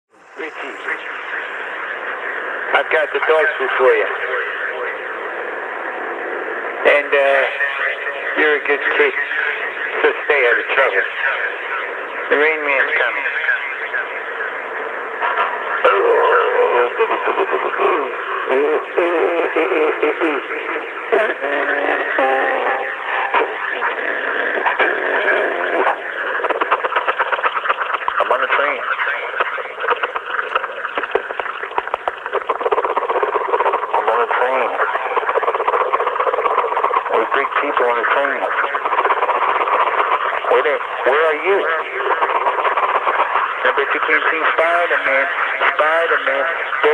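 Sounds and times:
recording hiss: 0.1 - 11.5
man speaking on radio: 0.4 - 1.2, 2.7 - 5.2, 6.8 - 14.6, 15.3 - 39.6, 40.4 - 46.9.

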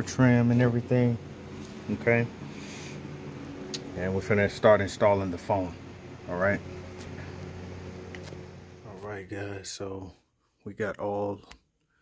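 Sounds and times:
background hum: 0.0 - 12.0.

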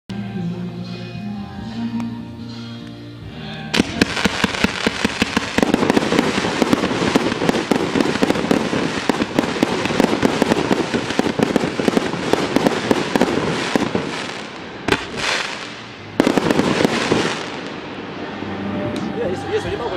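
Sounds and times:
firework cake shots crackling: 3.8 - 17.6.

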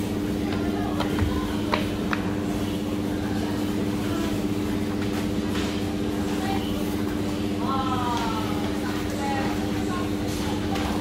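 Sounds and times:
low machinery hum: 0.0 - 11.0.

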